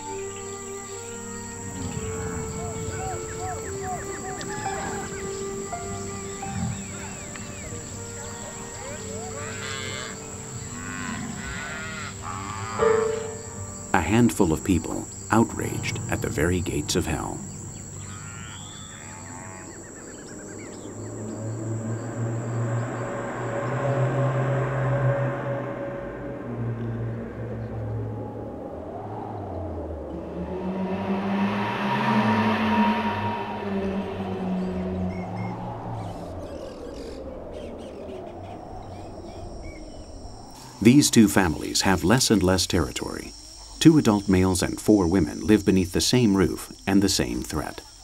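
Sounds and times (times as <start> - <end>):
low held tones music: 0.0 - 19.0, 19.8 - 38.0
high insect chirr: 0.0 - 48.0.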